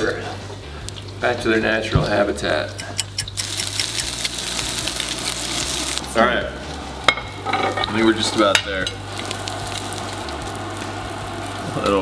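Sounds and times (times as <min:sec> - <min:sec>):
food sizzling in butter: 0:02.4 - 0:12.0.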